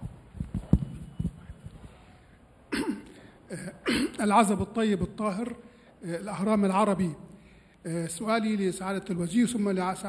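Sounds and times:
microphone handling thumps: 0:00.0 - 0:02.0
man speaking into microphone: 0:03.5 - 0:10.0.

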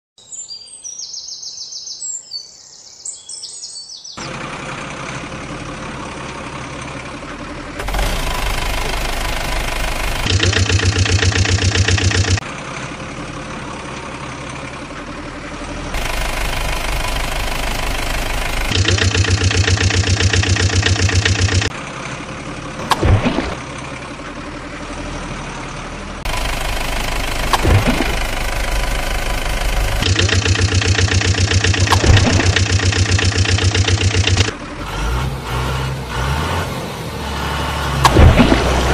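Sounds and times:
truck engine idling and revving: 0:04.2 - 0:38.9.

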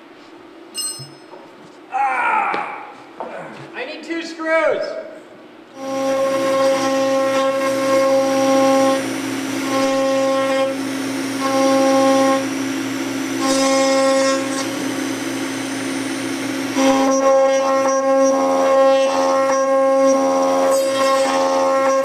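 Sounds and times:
router bit cutting wood: 0:05.8 - 0:22.0
router spindle whining: 0:05.8 - 0:22.0.

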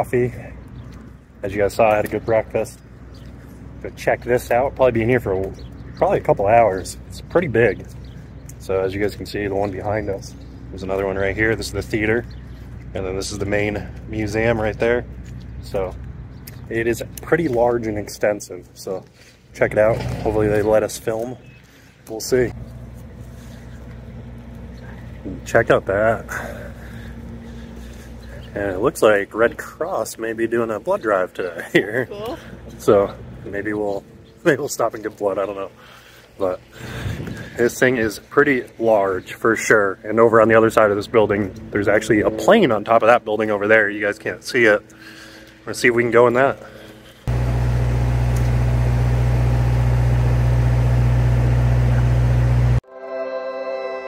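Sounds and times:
engine humming: 0:00.0 - 0:52.8.

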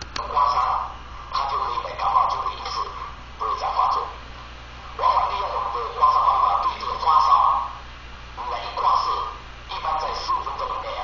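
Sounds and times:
man speaking through small speaker: 0:00.2 - 0:04.2, 0:05.0 - 0:07.8, 0:08.4 - 0:11.0.

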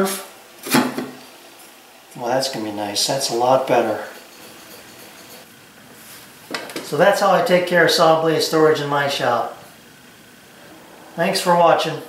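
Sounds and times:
man talking: 0:02.2 - 0:04.2, 0:06.9 - 0:09.6, 0:11.2 - 0:12.0.

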